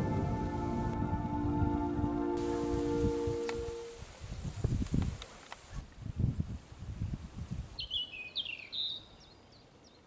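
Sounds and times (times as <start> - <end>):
songbird singing: 0.0 - 4.2, 7.0 - 10.0.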